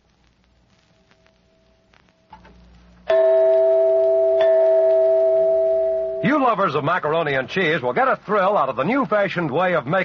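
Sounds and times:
bell-like musical chord: 0:03.1 - 0:06.3.

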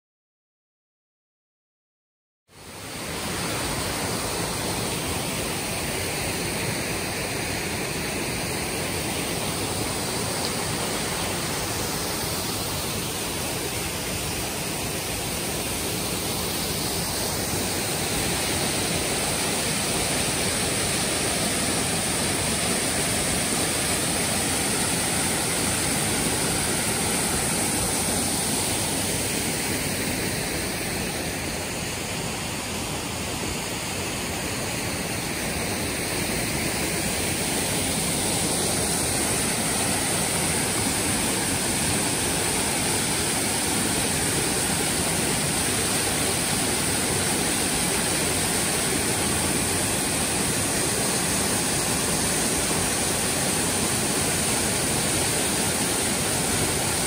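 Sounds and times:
waterfall rushing over rocks: 0:02.5 - 0:57.0.

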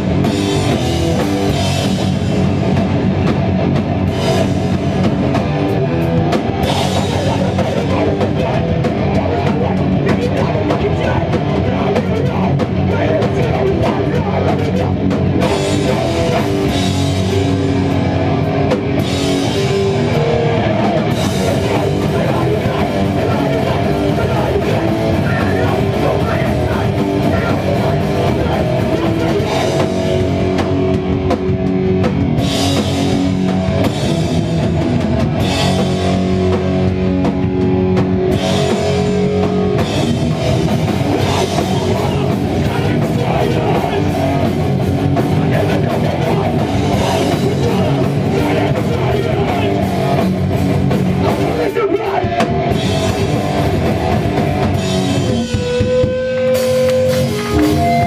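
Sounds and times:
punk band playing live: 0:00.0 - 0:58.0.

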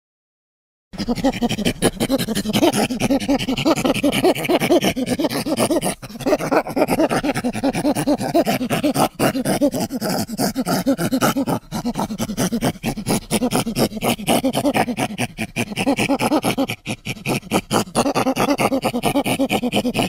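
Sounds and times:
panting primate grunts and hoots: 0:01.0 - 0:20.0.

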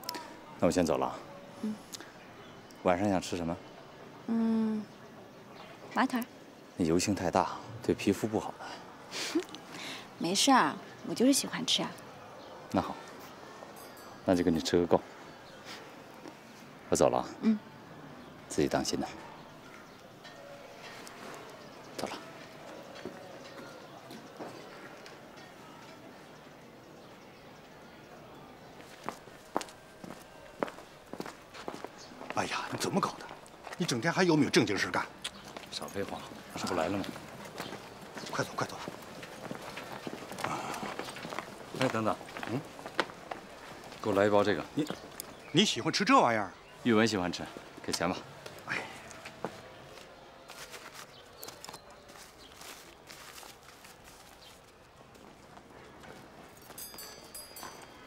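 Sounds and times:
footsteps on hard surface: 0:28.8 - 0:32.4, 0:35.4 - 0:44.1
paper bag crinkling: 0:50.5 - 0:54.7.

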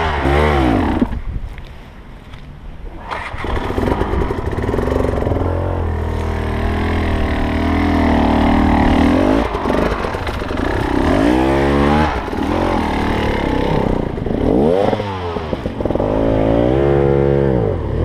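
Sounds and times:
motorcycle engine revving: 0:00.0 - 0:01.2, 0:02.9 - 0:18.0.

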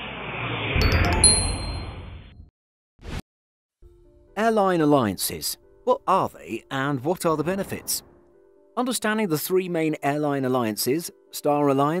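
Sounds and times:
sharp swoosh: 0:00.0 - 0:01.0
bright ding chime: 0:00.8 - 0:02.2.

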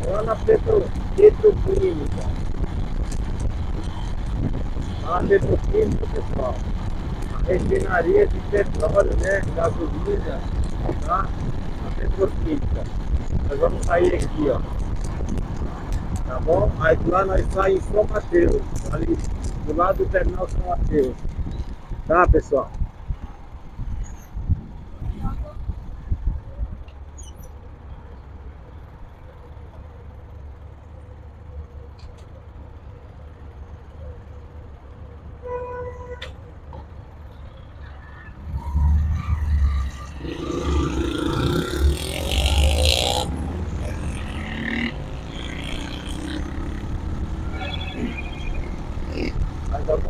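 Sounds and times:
motorcycle engine: 0:00.0 - 0:22.2, 0:38.1 - 0:50.0
wind rushing over microphone: 0:00.0 - 0:26.9
vehicle horn beep: 0:35.4 - 0:36.3.

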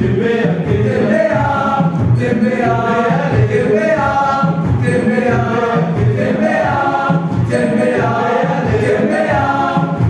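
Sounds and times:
choir singing in parts: 0:00.0 - 0:10.0.

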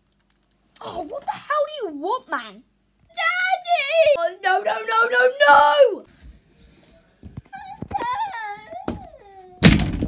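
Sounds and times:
child wailing: 0:03.1 - 0:06.1, 0:07.6 - 0:09.6
loud thud: 0:09.6 - 0:10.0.

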